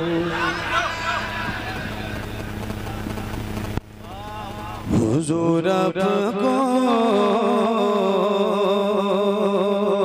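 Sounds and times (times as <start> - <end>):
murmur of voices: 0.0 - 3.4
sound system rumbling hiss: 0.0 - 9.4.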